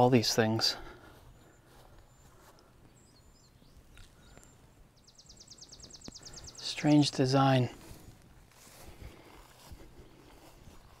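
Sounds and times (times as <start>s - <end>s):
faint bird chirps: 1.2s - 7.2s.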